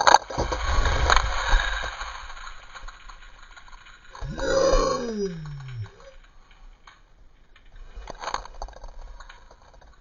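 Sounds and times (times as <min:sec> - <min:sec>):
man groaning: 0:04.2 - 0:06.2.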